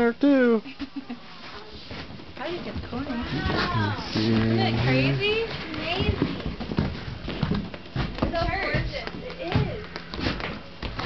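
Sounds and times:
people talking indistinctly: 2.4 - 6.4.

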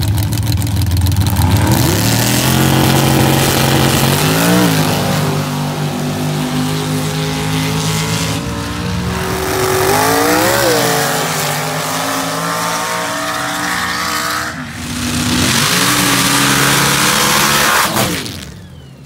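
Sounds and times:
truck engines revving: 0.0 - 19.0.

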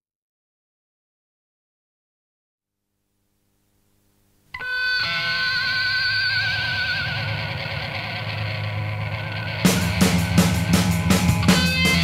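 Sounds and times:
sustained vibrato guitar chord: 4.5 - 12.0
drum hits: 9.6 - 12.0.

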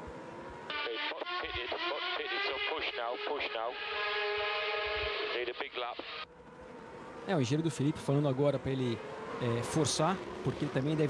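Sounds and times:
voice over radio: 0.7 - 6.3.

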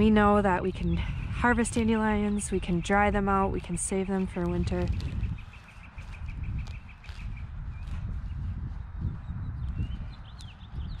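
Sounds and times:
low wind rumbling on microphone: 0.0 - 11.0.

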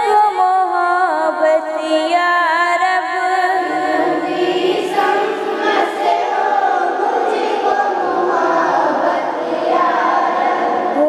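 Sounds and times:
chorus singing devotional song: 0.0 - 11.0.

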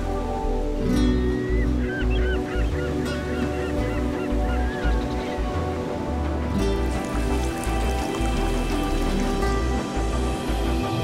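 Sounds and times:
background music: 0.0 - 11.0
birds chirping: 0.2 - 11.0.

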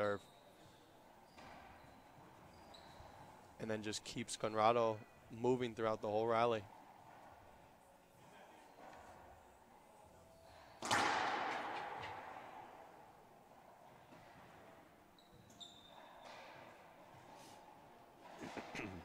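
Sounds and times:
sneakers squeaking on hardwood: 0.0 - 3.6, 14.0 - 16.8
racquetball struck hard: 10.8 - 12.8.

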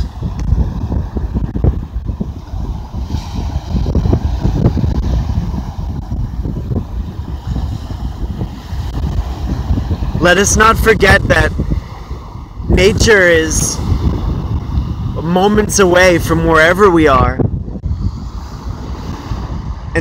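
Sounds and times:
surf breaking on shore: 0.0 - 20.0
wind buffeting microphone: 0.0 - 20.0.

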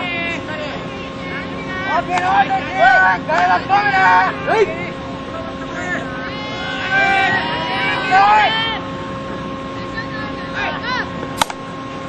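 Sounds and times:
young players shouting calls: 0.0 - 4.9, 5.7 - 8.9
steady hum: 0.0 - 12.0.

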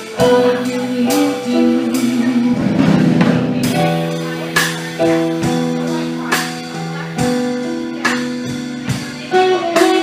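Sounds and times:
drums: 0.0 - 10.0
keyboard: 0.0 - 10.0.

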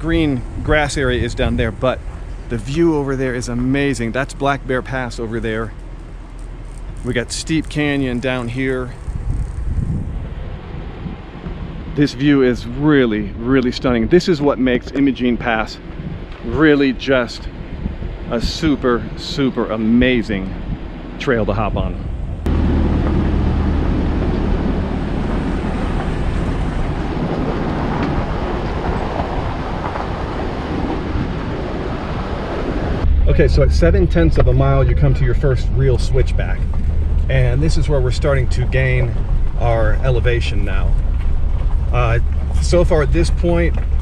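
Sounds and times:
deep low drone: 0.0 - 44.0
vehicle engine rumble: 0.0 - 44.0.

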